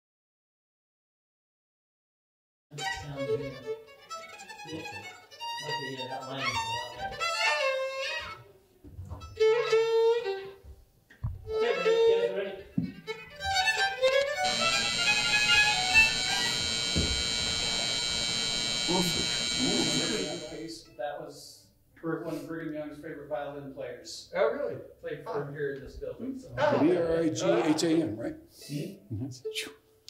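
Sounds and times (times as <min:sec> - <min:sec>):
dense sustained held tones: 0:14.4 - 0:20.6.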